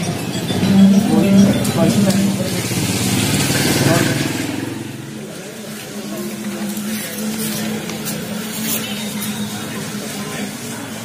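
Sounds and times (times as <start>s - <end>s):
person speaking: 0.5s - 3.2s
vehicle engine running: 0.5s - 9.1s.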